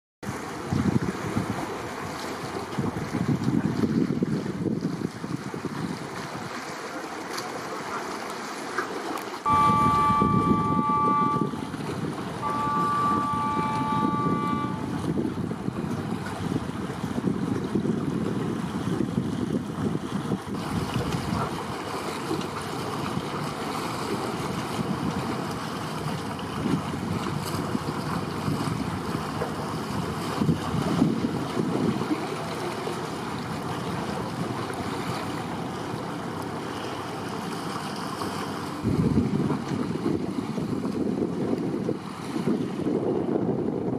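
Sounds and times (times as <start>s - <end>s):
wind buffeting microphone: 0.2s - 6.6s, 9.5s - 43.9s
harbour water washing: 0.2s - 43.9s
high two-note horn blasts: 9.5s - 15.3s.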